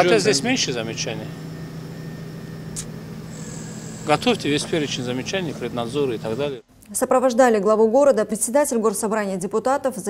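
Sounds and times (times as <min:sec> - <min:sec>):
low mechanical hum: 0:00.0 - 0:06.9.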